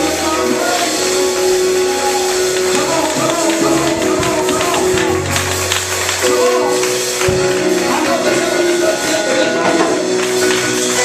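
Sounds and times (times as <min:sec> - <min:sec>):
congregation clapping in rhythm: 0:00.0 - 0:11.0
held chord: 0:00.0 - 0:11.0
drums and percussion: 0:02.5 - 0:11.0.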